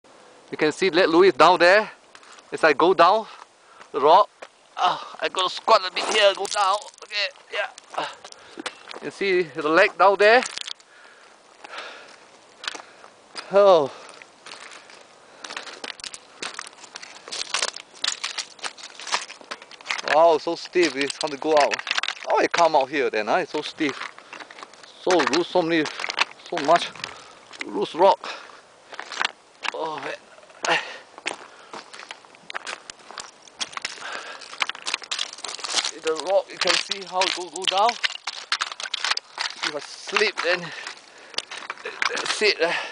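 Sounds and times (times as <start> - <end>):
footsteps crunching on loose scree: 0.6 - 42.9.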